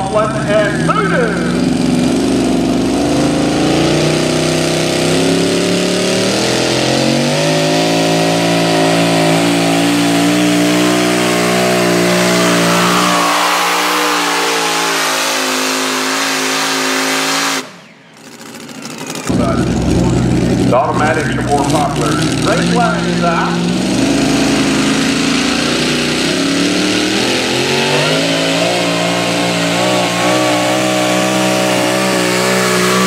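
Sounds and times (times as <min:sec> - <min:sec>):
tractor engine at full throttle: 0:00.0 - 0:33.0.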